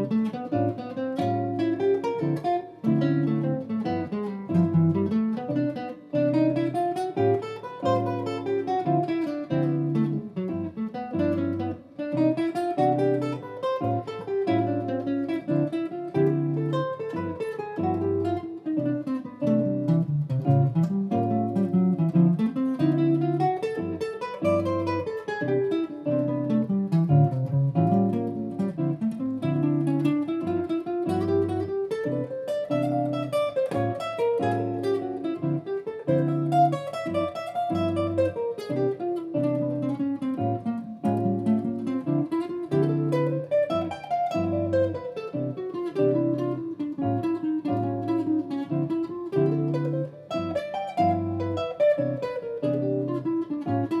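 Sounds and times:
electric jazz guitar single-note line: 0.0s - 54.0s.

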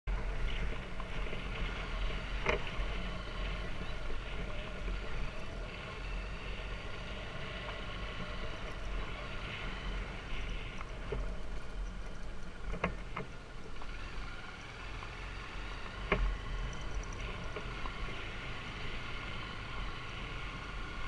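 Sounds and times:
dirt bike engine running: 0.1s - 21.0s.

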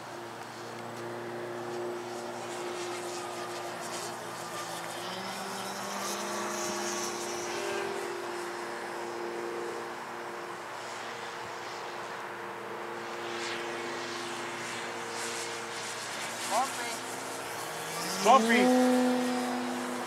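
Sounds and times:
model plane motor and propeller: 0.0s - 20.0s.

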